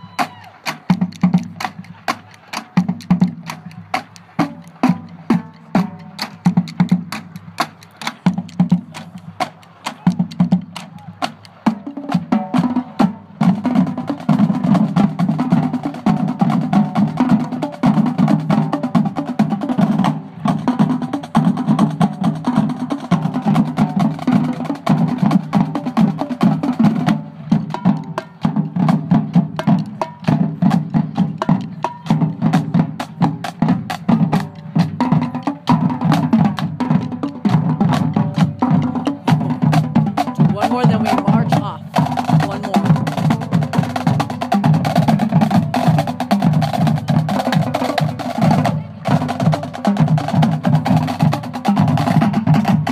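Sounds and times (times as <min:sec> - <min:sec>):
snare and bass drums cadence: 0:00.2 - 0:52.9.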